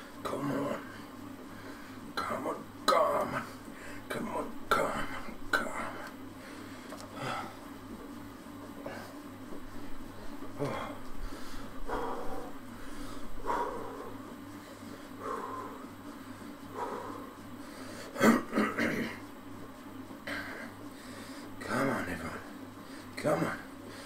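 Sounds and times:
steady low hum: 0.0 - 24.0
man breathing hard: 0.8 - 2.1, 3.4 - 4.1, 5.1 - 7.8, 8.8 - 18.3, 20.2 - 21.6.

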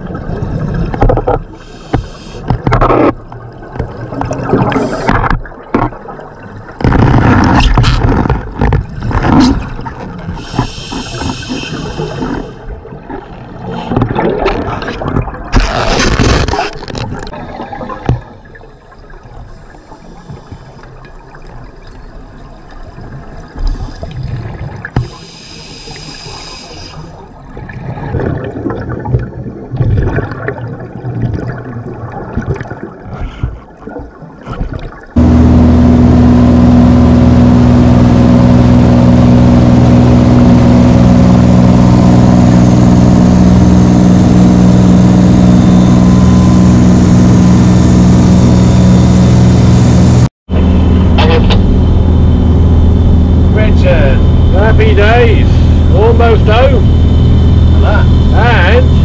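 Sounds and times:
exhaled bubbles underwater: 0.0 - 15.6, 17.0 - 35.2
scuba regulator breathing: 1.6 - 2.5, 10.4 - 12.7, 25.0 - 27.2
boat engine running: 35.1 - 59.0
voices: 53.5 - 57.0, 57.7 - 59.0.

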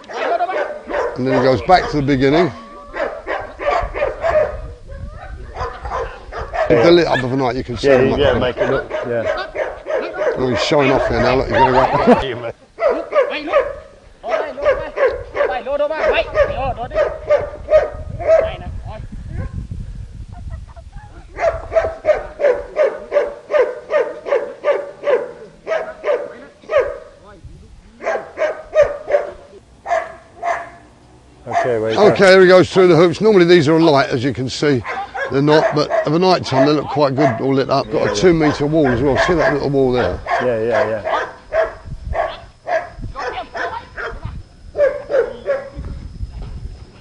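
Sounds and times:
small dog barking: 0.0 - 2.0, 2.9 - 12.2, 12.8 - 18.6, 21.3 - 27.2, 28.0 - 30.8, 31.5 - 32.2, 34.8 - 45.8.

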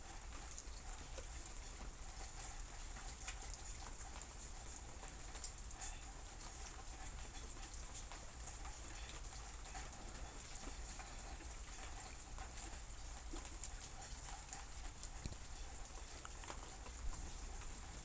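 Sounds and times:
raindrops pattering: 0.0 - 18.0.

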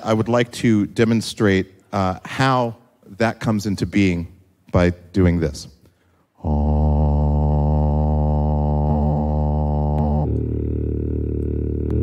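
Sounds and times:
man's low vocal drone: 6.4 - 12.0.

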